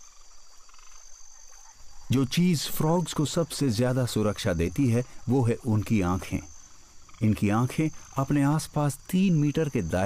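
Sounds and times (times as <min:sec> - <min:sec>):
frogs croaking faintly: 0:00.0 - 0:10.0.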